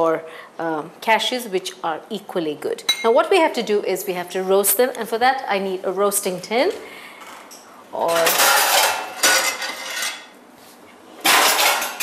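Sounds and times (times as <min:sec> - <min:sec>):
metal pans clattering: 0:08.0 - 0:10.3, 0:11.2 - 0:12.0.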